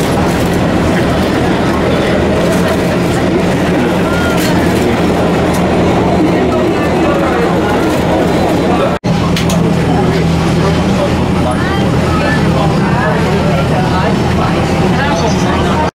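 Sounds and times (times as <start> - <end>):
jet engines humming: 0.0 - 15.9
people talking: 0.0 - 16.0.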